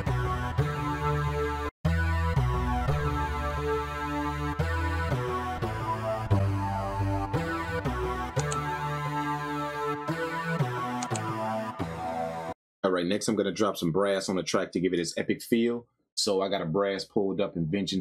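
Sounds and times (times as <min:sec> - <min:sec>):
looping synth bass melody: 0:00.0 - 0:12.5.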